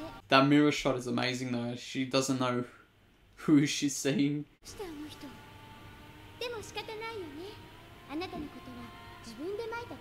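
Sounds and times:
woman speaking: 4.6s - 5.5s, 6.4s - 10.0s.

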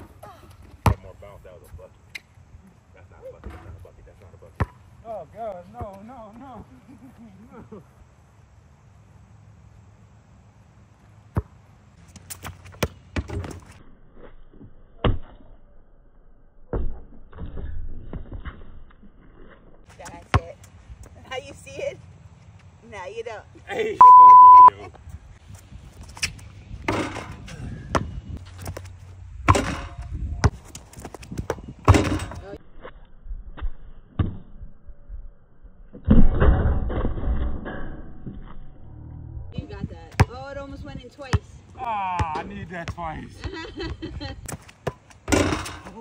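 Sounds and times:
basketball striking hoop: 29.4s - 30.0s, 31.8s - 32.4s
basketball bouncing on hard court: 40.1s - 40.4s.

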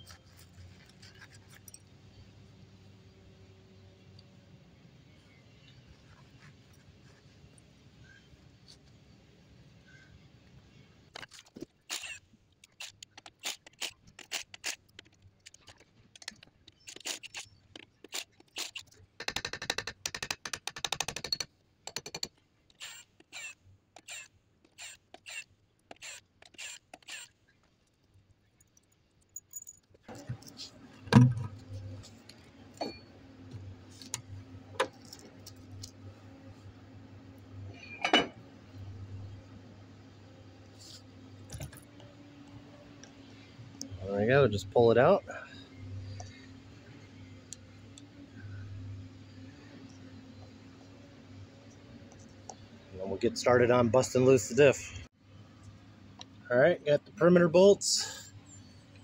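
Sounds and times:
metal clinks and knocks: 28.6s - 30.6s.

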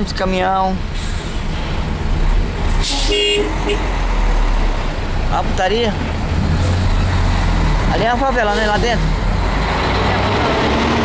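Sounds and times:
traffic engine rumble: 0.0s - 11.0s
vehicle horn toot: 2.8s - 3.9s.

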